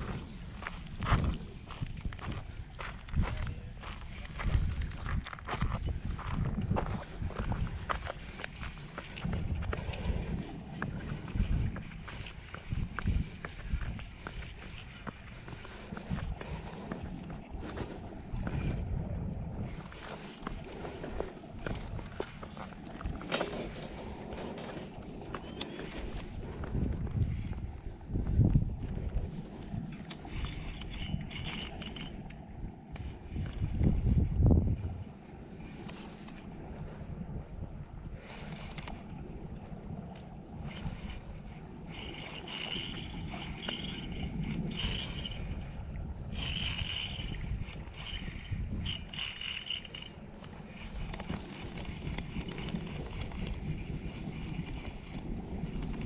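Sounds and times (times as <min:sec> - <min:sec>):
wind rumble on microphone: 0:00.0 - 0:56.0
fishing reel whirring: 0:08.0 - 0:39.9, 0:40.5 - 0:56.0.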